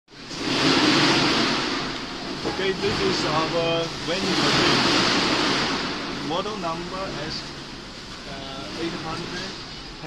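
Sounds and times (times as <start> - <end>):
steady rushing noise: 0.1 - 10.0.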